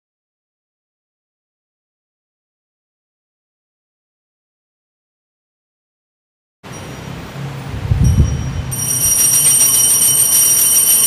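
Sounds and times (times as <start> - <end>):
bells ringing: 6.7 - 11.0
low rumble: 7.1 - 8.8.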